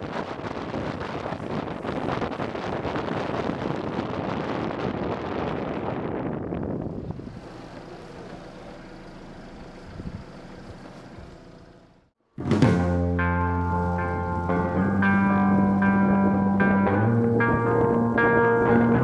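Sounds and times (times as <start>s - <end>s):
wind rushing over microphone: 0.0s - 7.8s, 9.8s - 10.4s, 13.8s - 19.0s
road noise: 0.0s - 19.0s.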